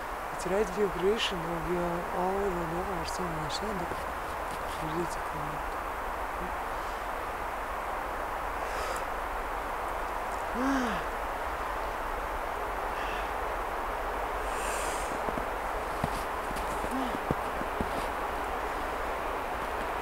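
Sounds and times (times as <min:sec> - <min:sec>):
background hiss: 0:00.0 - 0:20.0.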